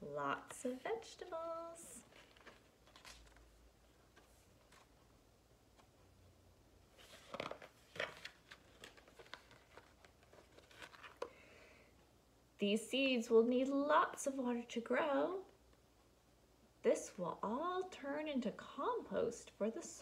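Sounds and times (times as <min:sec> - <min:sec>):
book pages turning: 0:00.4 - 0:06.1, 0:06.9 - 0:11.4.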